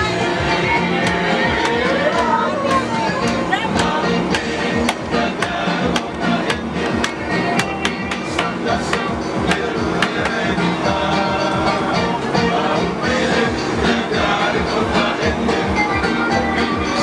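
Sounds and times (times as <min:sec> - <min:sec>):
lively music with percussion: 0:00.0 - 0:17.0.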